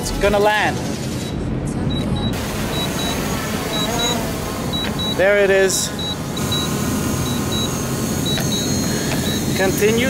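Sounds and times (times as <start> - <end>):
high double beep: 1.9 - 5.3, 6.0 - 9.7
quadcopter hovering: 2.4 - 10.0.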